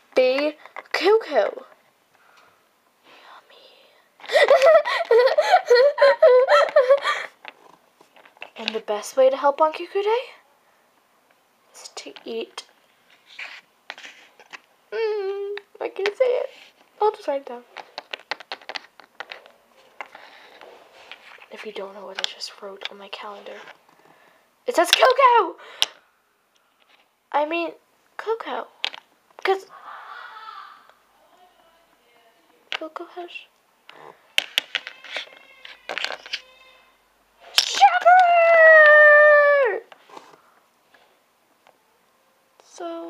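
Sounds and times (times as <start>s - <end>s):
child's high-pitched cry: 29.7s - 31.0s, 34.8s - 37.0s, 37.8s - 39.9s.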